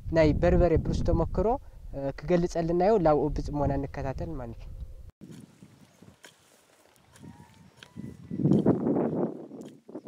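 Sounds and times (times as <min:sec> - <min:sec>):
hoe digging dry soil: 0:05.2 - 0:10.0.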